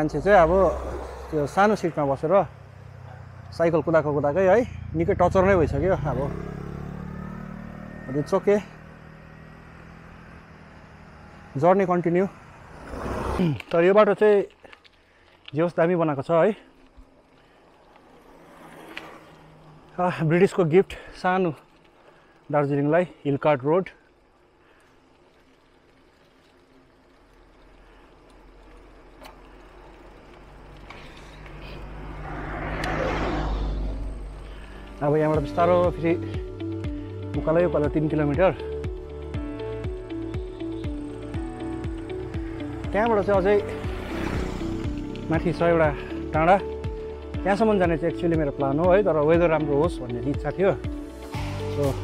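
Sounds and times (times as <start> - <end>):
motor scooter passing: 0.0 - 13.8, 16.1 - 22.4, 24.1 - 52.0.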